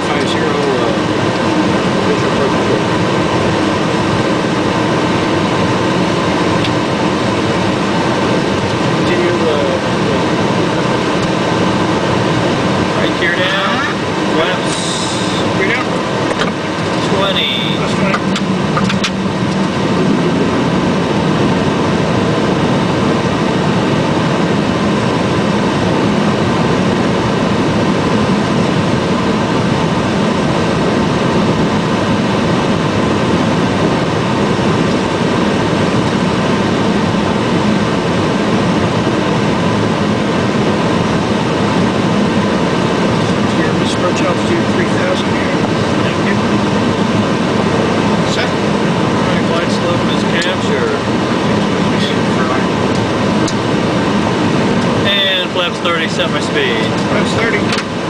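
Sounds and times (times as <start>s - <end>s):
rushing air from defogger: 7.4s - 24.6s.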